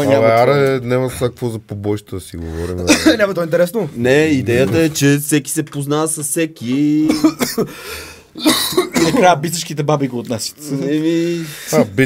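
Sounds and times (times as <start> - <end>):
man coughing: 2.8 - 3.3, 7.0 - 7.8, 8.4 - 9.4.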